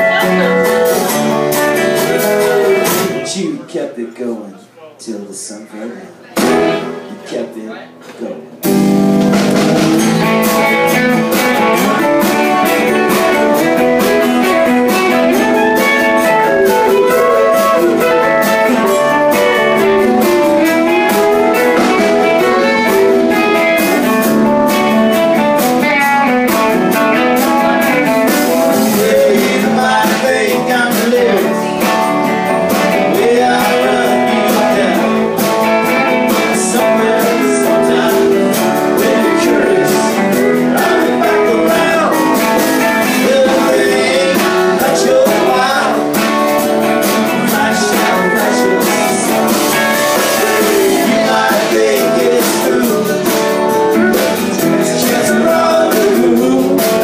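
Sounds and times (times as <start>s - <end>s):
person singing: 0.0s - 3.3s, 10.0s - 25.0s, 26.5s - 57.0s
live rock band playing: 0.0s - 3.4s, 6.2s - 7.3s, 8.4s - 57.0s.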